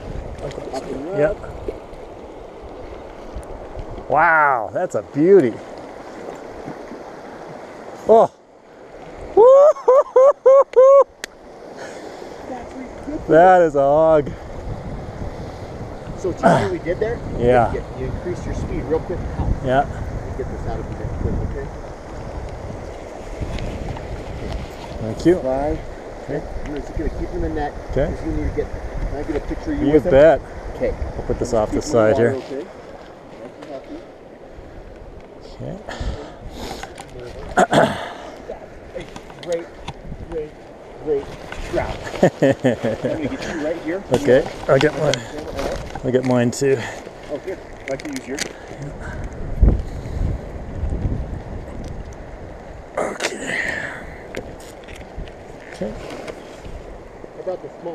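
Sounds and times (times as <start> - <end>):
wind rumble on microphone: 0.0 - 4.6, 12.5 - 33.2, 34.4 - 53.1, 53.8 - 57.4
river running over rocks: 0.0 - 10.0, 21.8 - 57.9
stream water rushing: 0.0 - 57.9.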